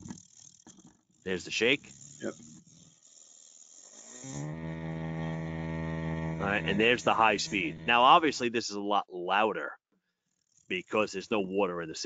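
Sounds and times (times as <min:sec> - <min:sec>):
pump motor humming: 0:00.0 - 0:08.2.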